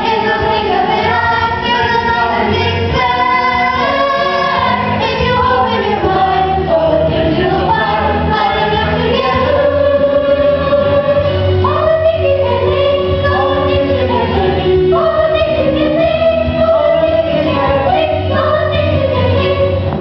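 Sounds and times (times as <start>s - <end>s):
children's chorus singing: 0.0s - 20.0s
instrumental accompaniment: 0.0s - 20.0s.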